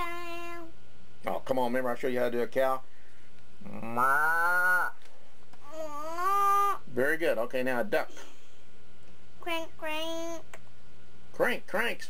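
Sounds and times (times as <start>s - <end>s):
person imitating cow moo: 3.6s - 5.0s.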